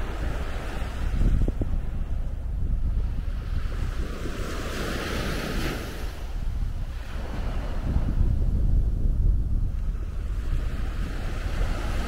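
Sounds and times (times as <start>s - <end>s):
small waves breaking on sand: 0.0s - 8.8s, 9.6s - 12.0s
wind buffeting microphone: 0.0s - 12.0s.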